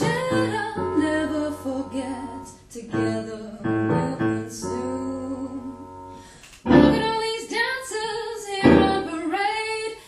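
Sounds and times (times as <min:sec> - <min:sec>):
woman singing: 0:00.0 - 0:06.1, 0:06.7 - 0:10.0
instrumental accompaniment: 0:05.5 - 0:07.2.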